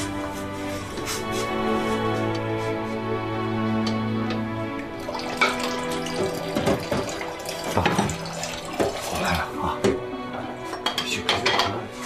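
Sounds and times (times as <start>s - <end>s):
soft background music: 0.0s - 12.0s
tap running into sink: 3.8s - 10.1s
dishes clinking: 5.0s - 10.0s, 10.7s - 12.0s.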